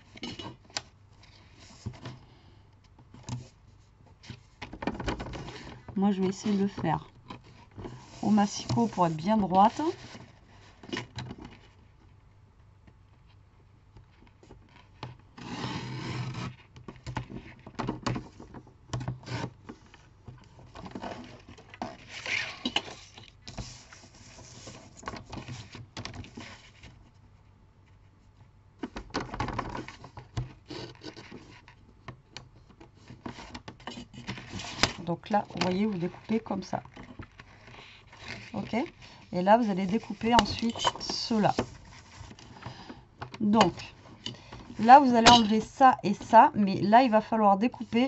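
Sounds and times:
paper rustling: 19.3 - 27.0.

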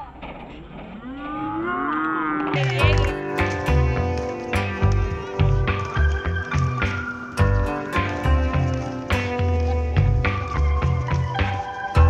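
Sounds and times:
faint court noise: 2.5 - 12.0.

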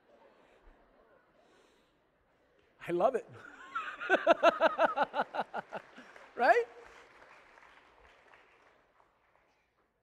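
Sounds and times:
faint crowd noise: 0.0 - 3.5.

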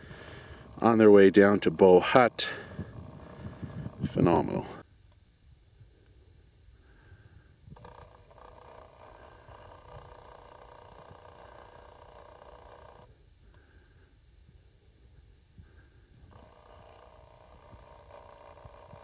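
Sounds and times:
wind buffeting microphone: 2.5 - 4.8
camera zoom motor whirring: 7.7 - 13.1, 16.2 - 19.0.

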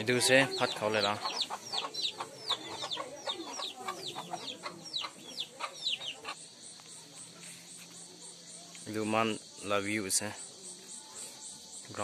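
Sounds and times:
chickens peeping: 0.0 - 6.8.

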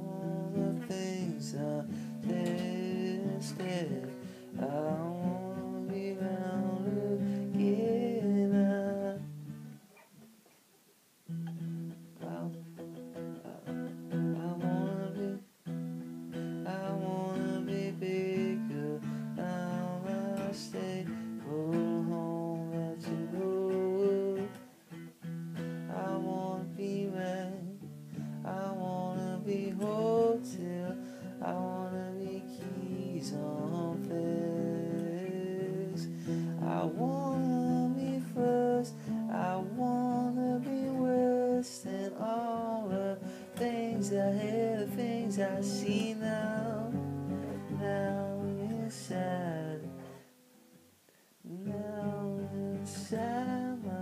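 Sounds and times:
acoustic guitar music: 0.0 - 10.6, 11.2 - 54.0.

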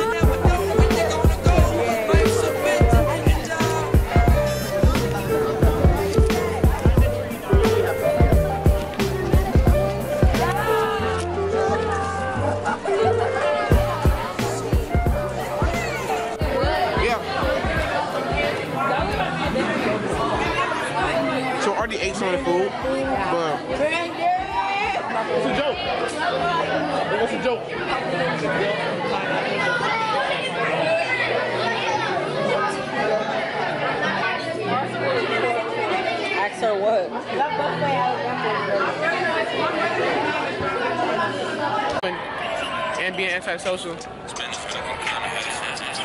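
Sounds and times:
babble of overlapping voices: 0.0 - 46.0.

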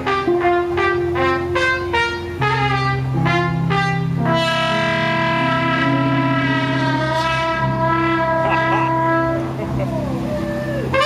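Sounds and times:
trumpet long note: 0.0 - 9.8, 10.8 - 11.0
band backing: 0.0 - 11.0.

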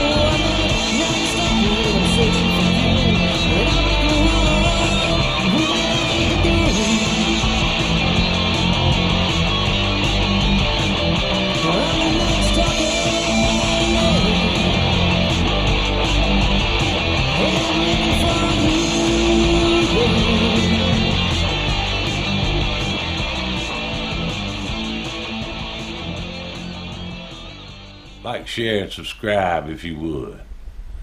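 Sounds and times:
hard rock band playing: 0.0 - 28.3.

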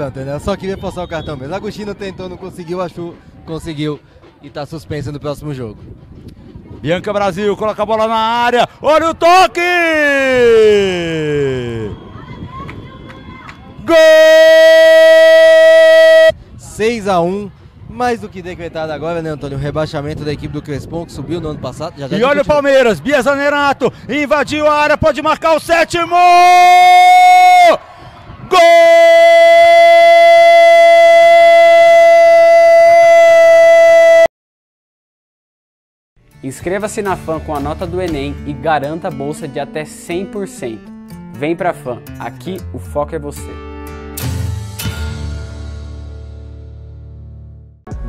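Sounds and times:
commentator shouting excitedly: 8.0 - 11.9, 13.8 - 16.3, 22.1 - 27.8, 28.5 - 34.1.

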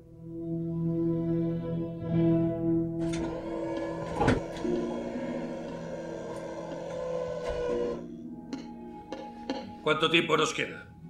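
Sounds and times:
film score low notes: 0.0 - 11.0
mechanical whirring: 3.0 - 8.2.

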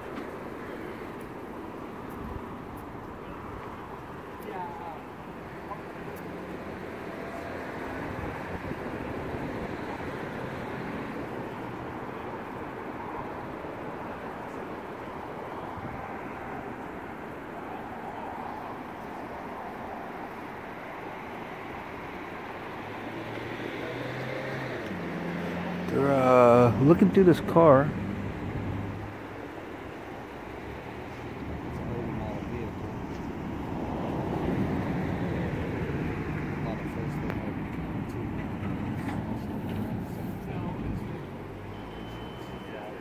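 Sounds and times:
traffic engine rumble: 0.0 - 43.0.

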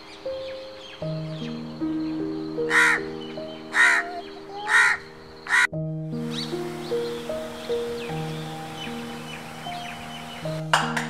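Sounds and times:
soft background music: 0.0 - 11.0
crow cawing: 2.6 - 5.8.

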